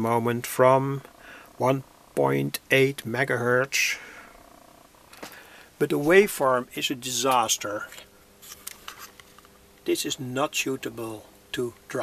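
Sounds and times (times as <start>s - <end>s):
man speaking: 0.0s - 4.1s, 5.8s - 8.0s, 9.9s - 12.0s
faint hum: 0.0s - 12.0s.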